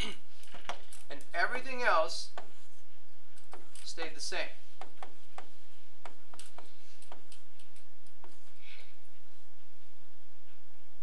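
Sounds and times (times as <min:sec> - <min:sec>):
stylus tapping on touchscreen: 0:03.4 - 0:03.7, 0:04.8 - 0:08.4.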